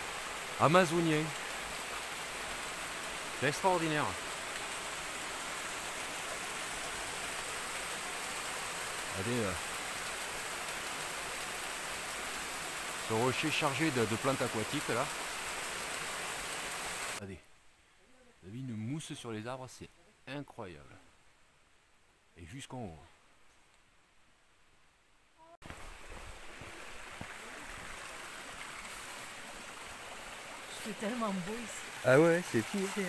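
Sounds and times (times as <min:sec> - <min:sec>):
cascading water rushing: 0:00.0 - 0:17.2, 0:25.6 - 0:33.0
water rushing over rock: 0:25.6 - 0:33.0.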